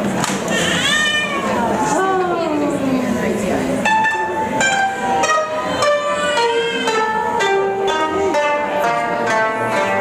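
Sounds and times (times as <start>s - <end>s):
koto notes bending down: 0.5s - 10.0s.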